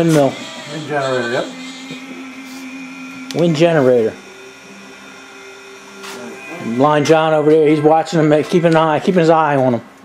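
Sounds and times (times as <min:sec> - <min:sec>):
small motor humming: 0:00.0 - 0:09.0.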